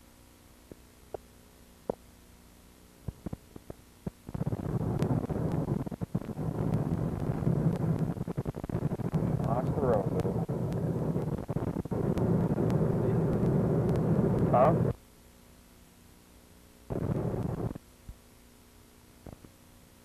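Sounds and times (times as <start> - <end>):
faint clicks: 3.1 - 14.5.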